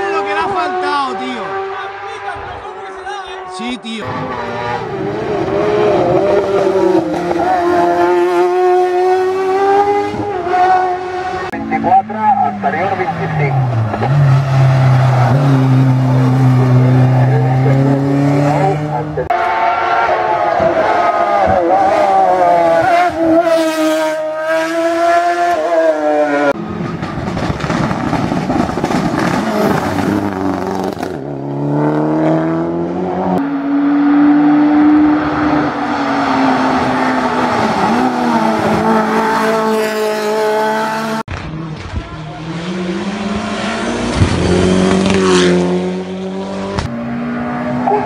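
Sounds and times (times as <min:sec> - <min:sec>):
race car engines revving: 0:00.0 - 0:48.0.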